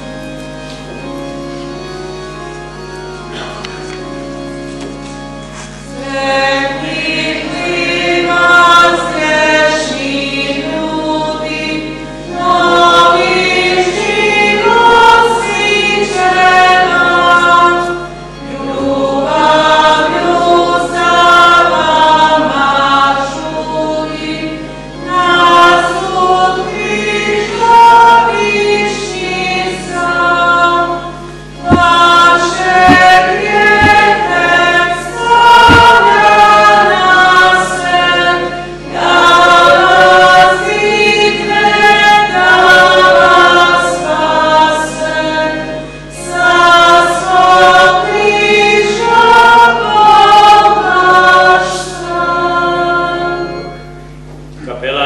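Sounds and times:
choir singing a hymn: 5.6s - 54.2s.

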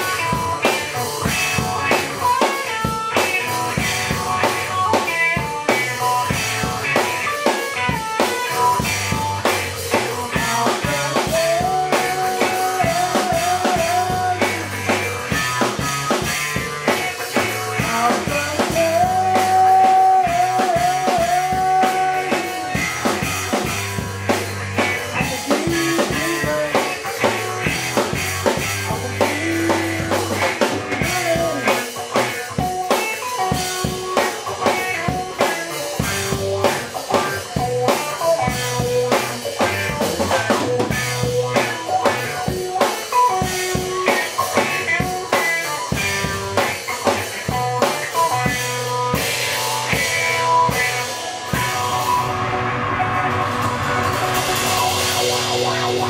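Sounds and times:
blues guitar riffing: 0.0s - 56.0s
drum kit beat: 0.0s - 56.0s.

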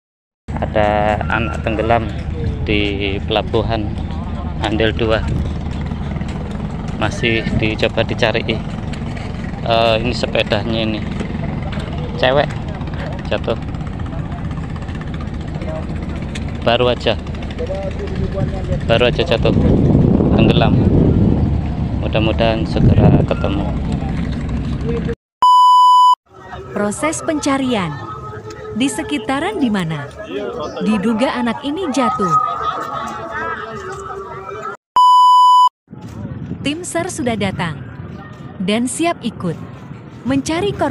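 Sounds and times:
low engine rumble: 0.5s - 25.2s
electronic bleep tone: 25.4s - 29.7s, 31.9s - 35.7s
faint voices: 26.3s - 34.8s.

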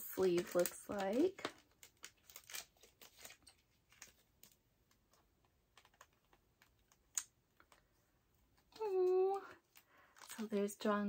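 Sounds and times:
woman's high-pitched vocal sound: 8.8s - 9.6s.

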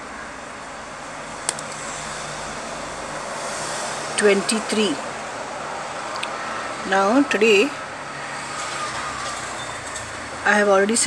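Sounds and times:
sharp click: 1.5s - 1.8s.

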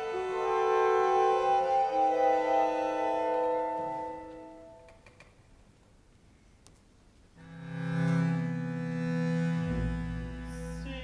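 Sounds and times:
orchestral strings chord: 7.4s - 11.0s.

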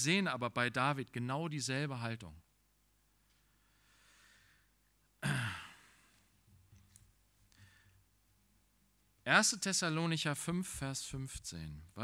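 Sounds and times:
faint in-breath: 3.3s - 4.8s, 7.5s - 8.1s
man sighing: 5.2s - 6.2s.

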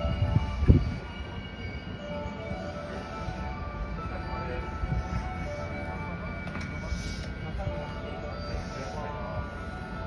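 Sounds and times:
electric train whine and hum: 0.0s - 10.0s
faint voices: 0.0s - 10.0s.

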